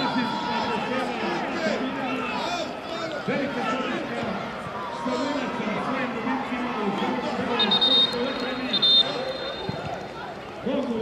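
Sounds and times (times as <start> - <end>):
people talking: 5.0 - 11.0
referee's whistle blasts: 7.5 - 9.8.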